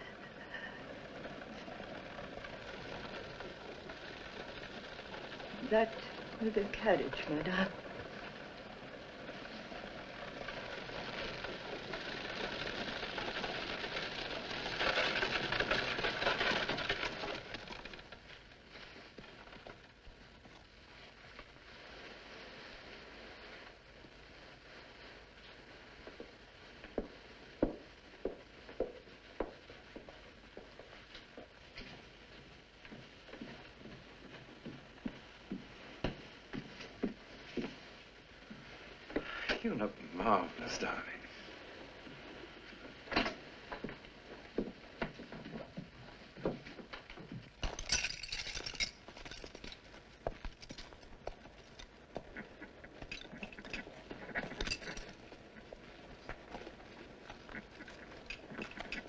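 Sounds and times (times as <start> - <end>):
hooves shifting: 0.0 - 22.0, 26.0 - 59.0
film soundtrack hiss: 0.0 - 59.0
footsteps walking indoors: 26.0 - 39.2, 43.7 - 47.8.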